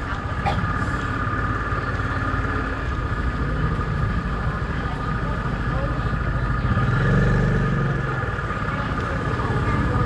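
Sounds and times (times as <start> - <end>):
market background noise: 0.0 - 10.0
motorbike engine running: 0.0 - 10.0.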